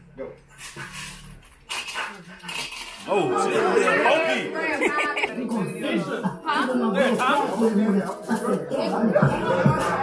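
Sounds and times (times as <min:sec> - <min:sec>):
faint voices: 0:02.0 - 0:10.0.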